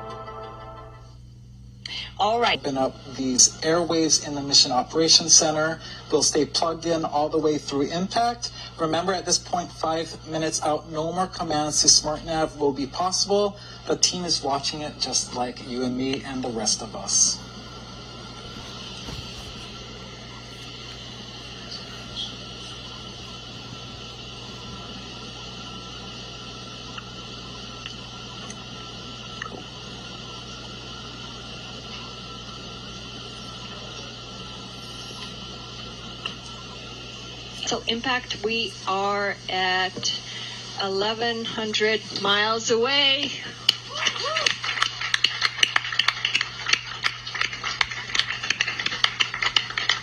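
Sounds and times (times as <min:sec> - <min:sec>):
microphone hiss and hum: 0:00.0 - 0:50.0
rapid clicking and tapping: 0:44.5 - 0:50.0.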